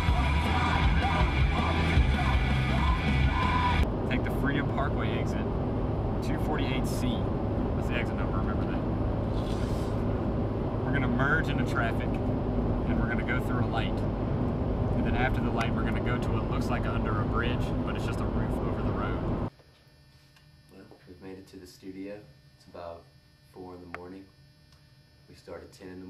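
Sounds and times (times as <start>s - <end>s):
music on car stereo: 0.0s - 3.8s
road noise inside car: 0.0s - 19.5s.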